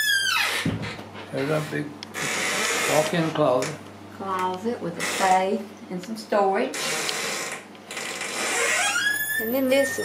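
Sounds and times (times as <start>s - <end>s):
door hinge squeaking: 0.0s - 1.0s, 2.2s - 3.1s, 6.8s - 10.0s.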